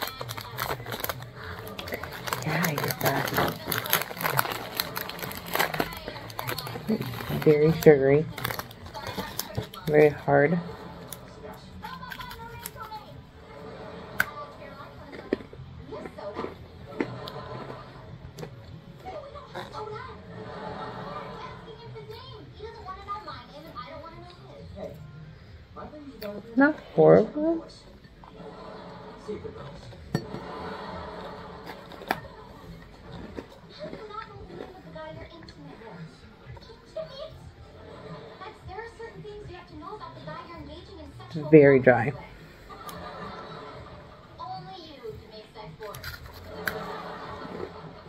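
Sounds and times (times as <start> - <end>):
biscuit crunching while chewed: 0.0 - 10.0, 10.8 - 13.0, 15.0 - 19.9, 31.2 - 35.9, 45.8 - 47.8
faint background chatter: 0.0 - 48.0.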